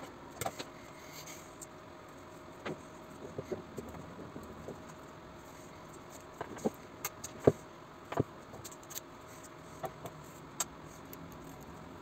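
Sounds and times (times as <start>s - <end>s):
faint steady hum: 0.0s - 12.0s.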